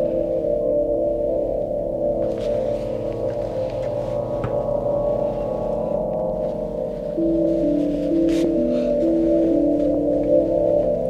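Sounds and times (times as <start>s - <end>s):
ambient drone music: 0.0s - 11.0s.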